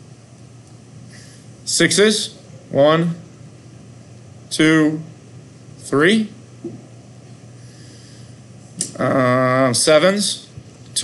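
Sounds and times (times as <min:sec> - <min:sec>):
low hum and hiss: 0:00.0 - 0:11.0
short breath: 0:07.6 - 0:08.4.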